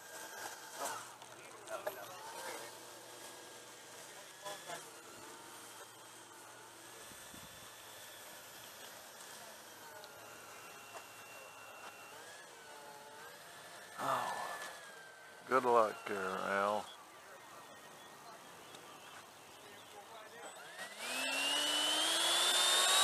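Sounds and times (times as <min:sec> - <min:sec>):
faint electric motor whine: 0:00.0 - 0:23.0.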